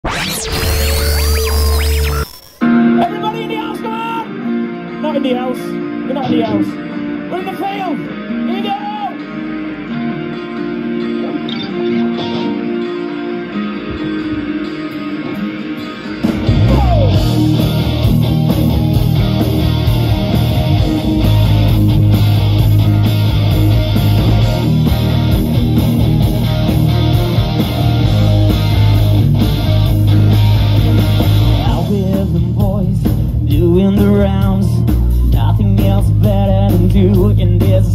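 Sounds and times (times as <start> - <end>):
synth glides: 0.0 - 2.6
electric guitars: 0.0 - 37.9
drum kit: 13.6 - 37.9
deep bass drone: 16.5 - 37.9.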